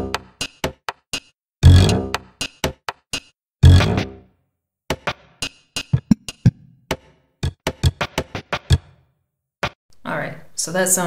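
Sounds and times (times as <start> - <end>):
hip-hop drum loops: 0.0 - 1.3, 4.9 - 8.9.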